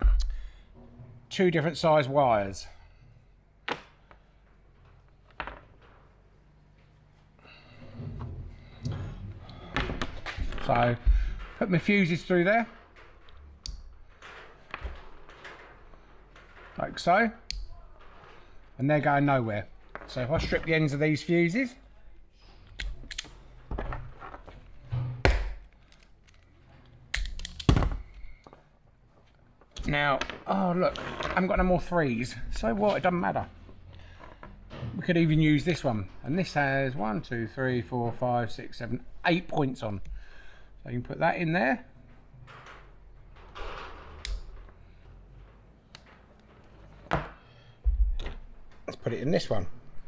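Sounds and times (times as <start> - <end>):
wires rustling: 3.7 - 37.0
connector levers clicking shut: 22.8 - 23.3, 27.1 - 27.8.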